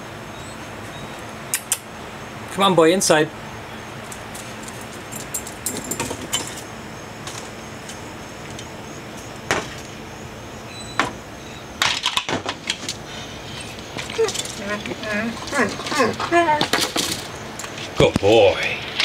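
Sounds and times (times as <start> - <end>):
collar tag jingling: 4.0 - 7.1, 13.5 - 17.8.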